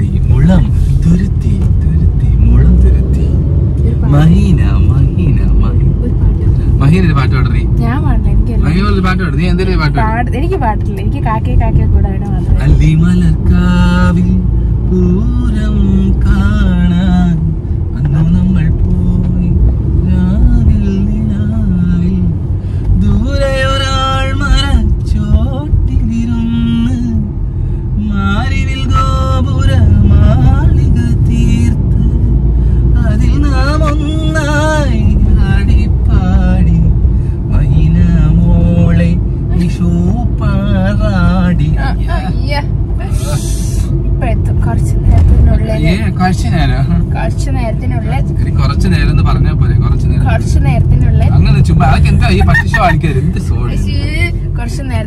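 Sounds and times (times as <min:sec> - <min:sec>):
people talking: 0:00.0 - 0:14.3, 0:37.6 - 0:55.0
car cabin road rumble: 0:00.0 - 0:55.0
people laughing: 0:52.1 - 0:53.4.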